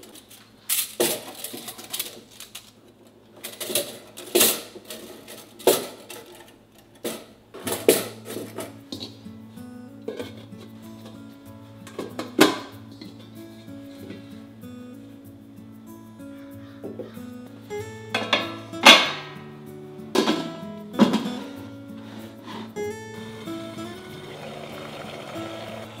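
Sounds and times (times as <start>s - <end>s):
soft background music: 7.6s - 26.0s.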